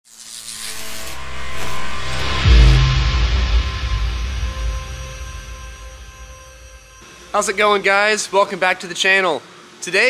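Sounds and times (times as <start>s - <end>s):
low steady drone: 0.8s - 8.8s
rising whoosh: 1.0s - 7.4s.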